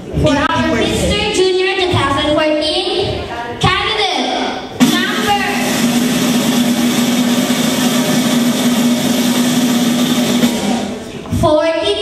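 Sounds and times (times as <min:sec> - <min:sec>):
drumroll over loudspeakers: 0:04.7 - 0:11.4
low hum: 0:04.8 - 0:11.2.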